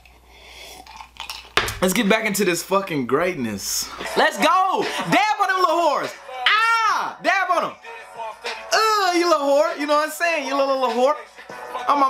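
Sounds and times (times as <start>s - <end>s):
man sipping from mug: 0.0s - 1.6s
man speaking: 1.7s - 7.8s, 8.7s - 11.2s.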